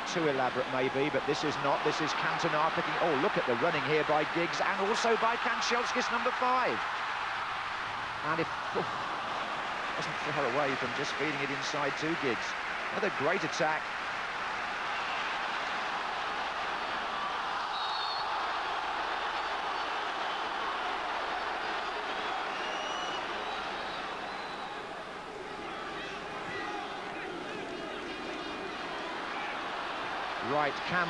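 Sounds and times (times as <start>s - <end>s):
stadium crowd noise: 0.0s - 31.0s.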